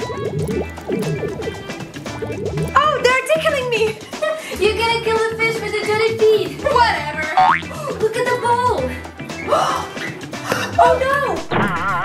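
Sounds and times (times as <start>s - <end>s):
background music: 0.0s - 12.0s
cartoon falling swoop: 7.4s - 7.7s.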